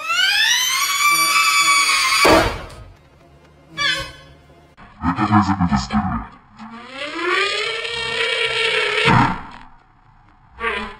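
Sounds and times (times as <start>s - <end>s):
pitch-shifted buzzy voice tone: 5.0s - 6.8s.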